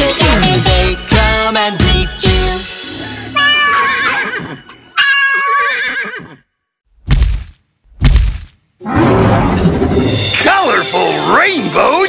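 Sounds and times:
cartoon horse whinnying: 3.4 - 6.4
low thuds: 7.0 - 9.6.

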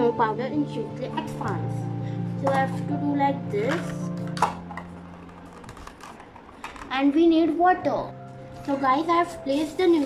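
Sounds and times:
plastic mould clicking and crinkling: 3.7 - 7.0.

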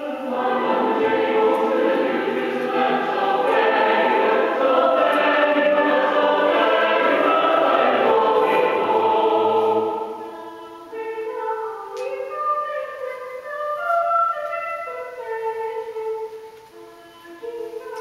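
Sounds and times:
choir singing a hymn: 0.0 - 13.0.

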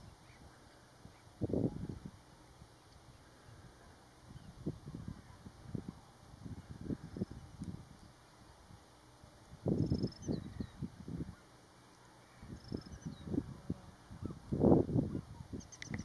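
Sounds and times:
wind buffeting microphone: 4.3 - 8.0, 9.5 - 11.4, 12.4 - 16.0
faint high bird chirps: 9.7 - 13.4, 15.1 - 16.0.

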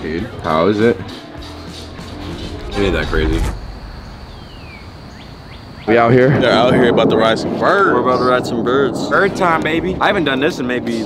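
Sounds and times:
outdoor background noise: 1.1 - 11.0
faint bird chirps: 2.5 - 6.0
man talking: 5.9 - 11.0.

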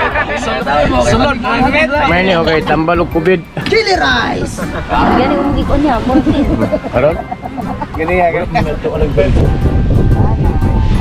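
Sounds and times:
men laughing: 0.0 - 0.7, 3.6 - 8.8
men talking: 0.0 - 9.7
background music: 0.0 - 11.0.

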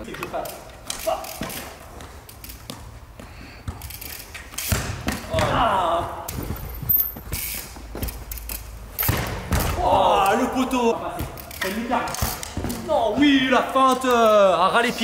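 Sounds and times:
bike landing thuds: 4.6 - 5.8, 9.0 - 10.0
football being kicked: 4.7 - 5.7, 9.0 - 10.0.

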